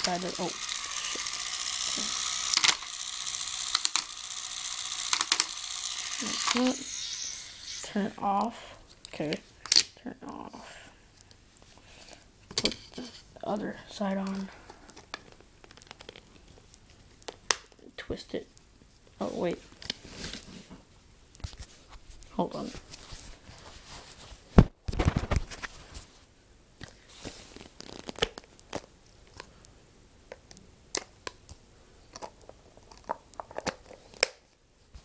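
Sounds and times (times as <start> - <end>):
plastic clicks and scratches: 0.0 - 7.9, 14.3 - 17.6, 30.3 - 34.4.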